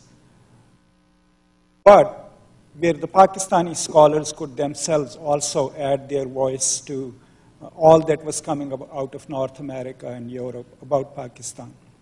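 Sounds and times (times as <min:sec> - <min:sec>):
faint electrical hum: 0:00.0 - 0:12.0
man talking over loudspeaker: 0:01.9 - 0:11.8.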